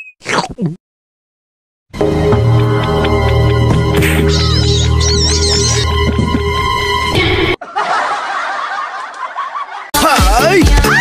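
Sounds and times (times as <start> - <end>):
background music: 2.0 - 7.6, 10.0 - 11.0
people snickering and chuckling: 7.6 - 11.0.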